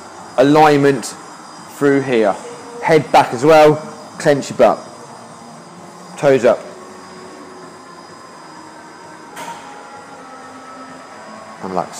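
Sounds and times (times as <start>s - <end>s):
indoor background hum: 0.0s - 11.9s.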